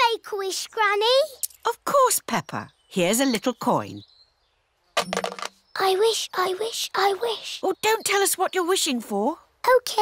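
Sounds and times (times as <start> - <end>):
coin clinks: 5.0 - 5.6.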